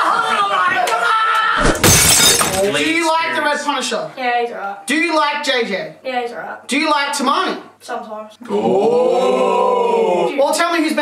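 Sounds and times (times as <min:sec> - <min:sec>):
men laughing: 0:00.0 - 0:01.6
loud shattering crash: 0:01.6 - 0:03.0.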